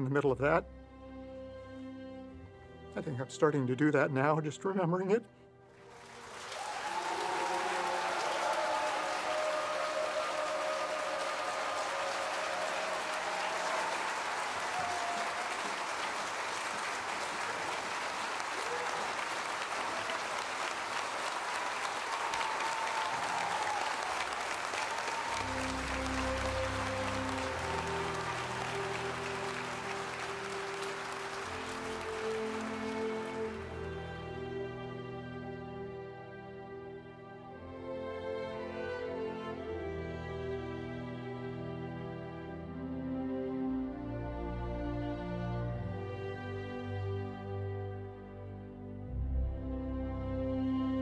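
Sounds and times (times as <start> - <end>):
orchestral music: 0.0 - 51.0
audience applauding: 5.8 - 34.8
audience cheering: 5.9 - 34.2.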